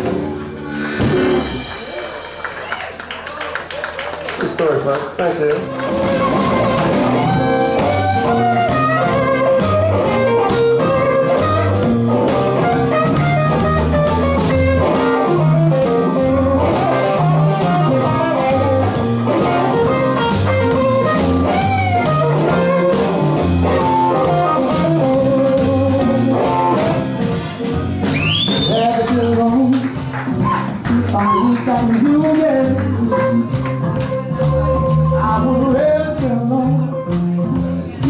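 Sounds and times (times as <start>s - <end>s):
bass guitar: 0.0s - 38.0s
drum kit: 0.0s - 38.0s
electric guitar lead lines: 5.6s - 28.2s.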